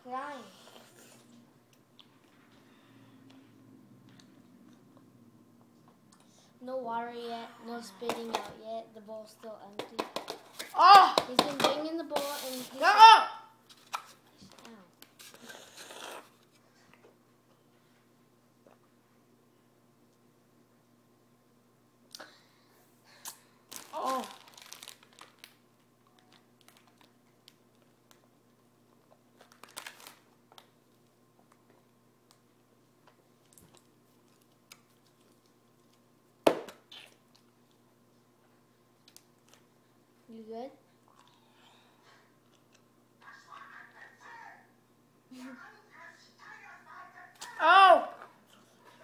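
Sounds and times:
child's voice: 0.0 - 0.6, 6.6 - 10.0, 10.8 - 13.4, 47.4 - 48.2.

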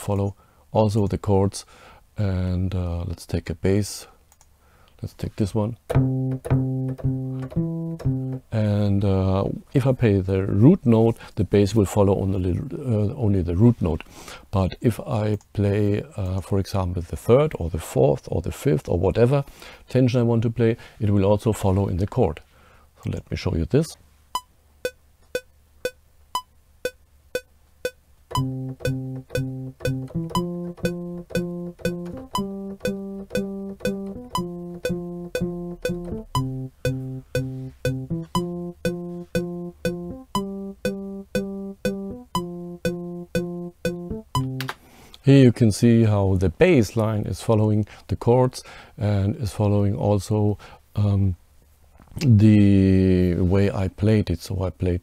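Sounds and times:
metronome clicking: 5.9 - 8.5, 24.4 - 44.8
plucked bass notes: 5.9 - 8.6, 28.3 - 44.8.

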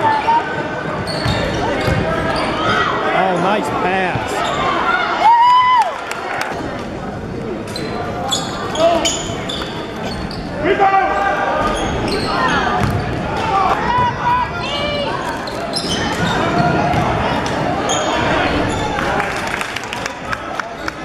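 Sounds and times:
basketball bouncing on court: 1.0 - 2.2, 12.8 - 13.3, 16.2 - 17.6
voices and shouts: 10.5 - 19.2.

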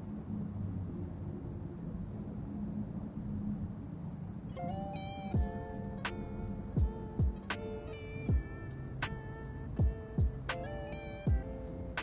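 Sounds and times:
low rumbling ambience: 0.0 - 12.0
soft lo-fi music: 0.0 - 12.0.

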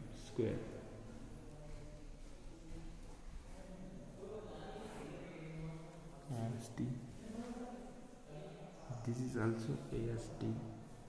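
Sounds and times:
faint chant-like voice: 0.0 - 11.0.

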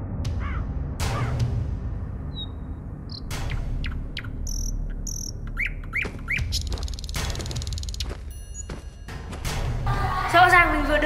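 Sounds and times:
bird chirping: 2.3 - 8.7.

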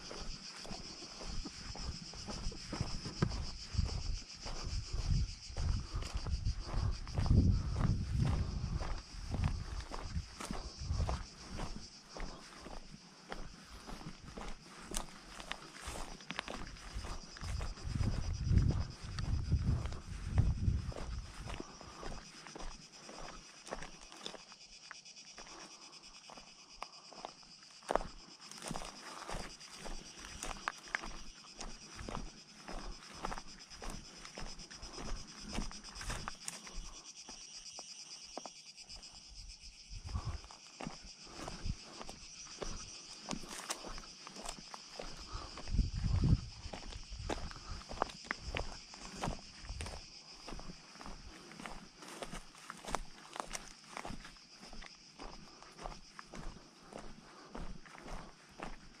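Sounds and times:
footsteps crunching on stone rubble: 0.0 - 24.4, 26.8 - 39.1, 40.1 - 59.0.

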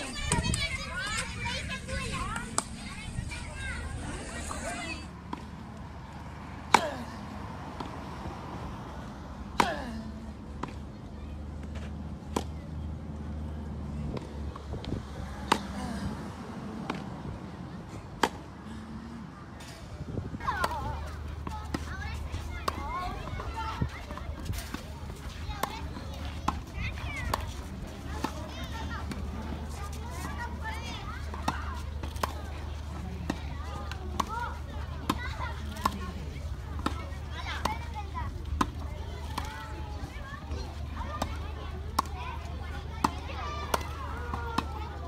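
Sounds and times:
children's voices chattering: 0.0 - 45.0
tennis racket hitting ball: 20.4 - 30.4, 31.1 - 36.1, 41.1 - 42.2.

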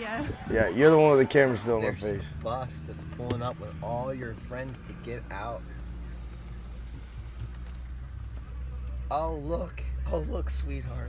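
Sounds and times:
car cabin rumble: 1.4 - 11.0.

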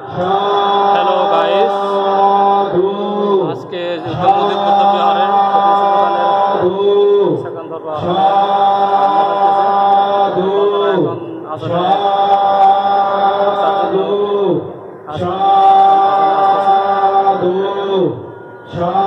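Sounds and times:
person chanting: 0.0 - 19.0.

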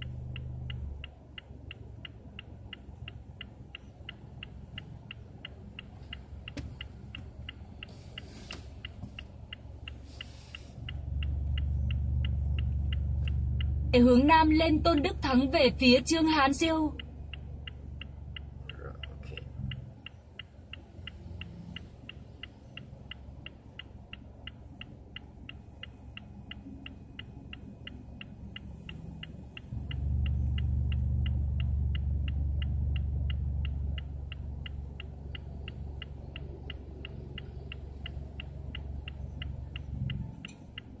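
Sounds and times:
car indicator ticking: 0.0 - 41.0
low car rumble: 0.0 - 41.0.

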